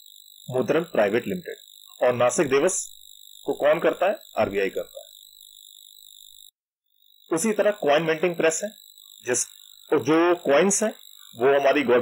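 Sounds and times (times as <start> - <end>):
high-pitched electrical whine: 0.0 - 12.0.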